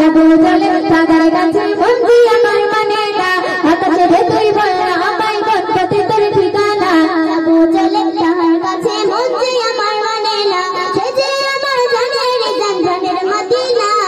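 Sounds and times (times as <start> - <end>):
girl singing into a microphone: 0.0 - 14.0.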